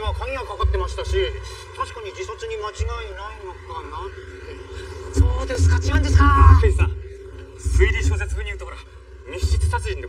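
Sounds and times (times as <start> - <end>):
man talking: 0.0 - 4.2, 5.1 - 10.0.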